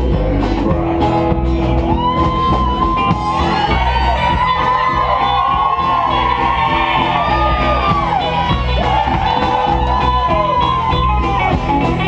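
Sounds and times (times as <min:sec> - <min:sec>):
electric guitar lead with bent notes: 0:00.0 - 0:12.0
live country band playing: 0:00.0 - 0:12.0
crowd whooping and shouting: 0:01.6 - 0:12.0.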